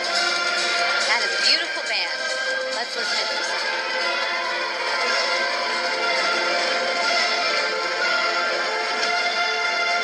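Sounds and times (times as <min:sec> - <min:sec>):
marching band playing: 0:00.0 - 0:10.0
flutes: 0:02.2 - 0:10.0.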